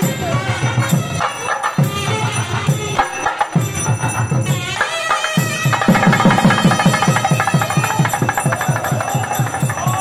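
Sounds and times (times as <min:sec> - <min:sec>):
barrel drum beating fast rhythm: 0:00.9 - 0:10.0.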